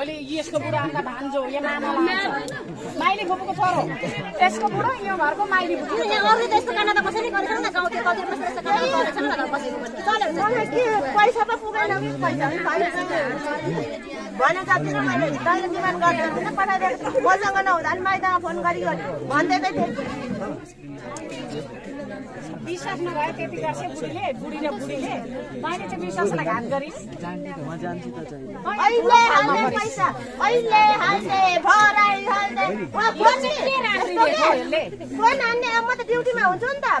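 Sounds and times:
people talking at once: 0:00.0 - 0:37.0.

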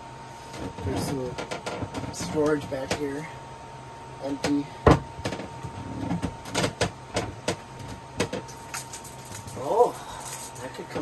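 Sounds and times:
items handled in locker: 0:04.3 - 0:11.0.

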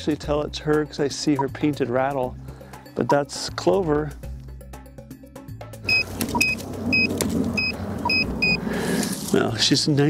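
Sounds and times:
background music: 0:00.0 - 0:10.0
short high electronic beeps: 0:05.9 - 0:08.6.

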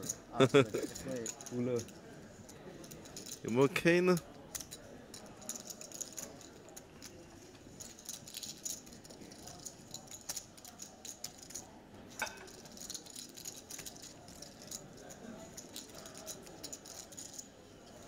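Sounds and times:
poker chips clicking: 0:04.4 - 0:11.6, 0:12.4 - 0:18.0.

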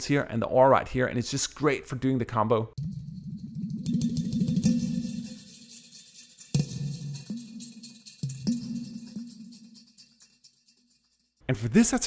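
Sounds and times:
clay pot drum roll: 0:02.8 - 0:10.8.

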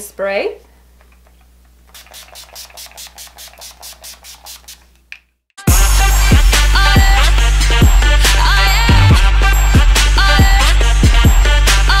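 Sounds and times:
spray bottle hissing: 0:01.9 - 0:04.9.

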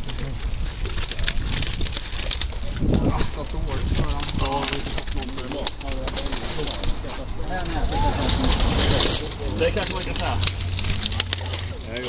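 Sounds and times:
men talking and laughing: 0:02.8 - 0:12.0.

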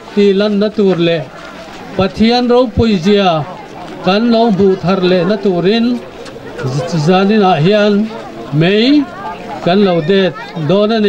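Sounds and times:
man speaking over public address: 0:00.0 - 0:11.0.

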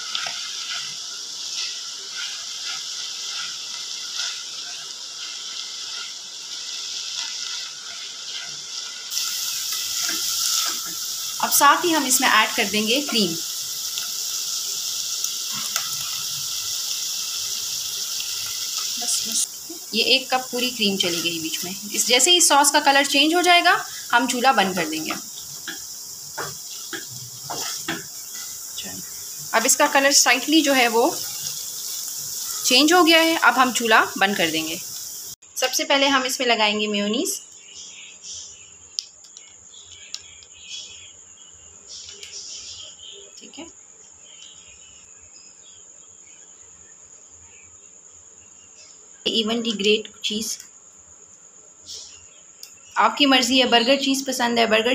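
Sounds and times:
mushrooms and onions sizzling: 0:00.0 - 0:37.3
crickets chirring: 0:00.0 - 0:54.9.

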